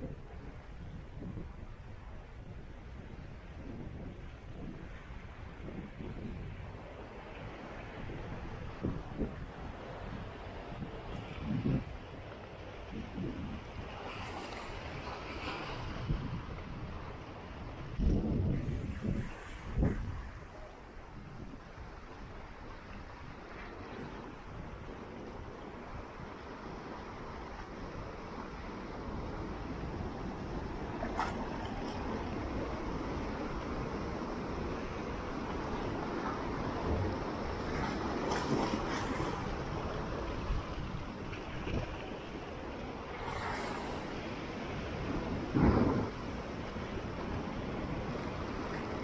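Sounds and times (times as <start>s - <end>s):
sea surf washing over rocks: 0.0s - 49.0s
wind buffeting microphone: 0.0s - 49.0s.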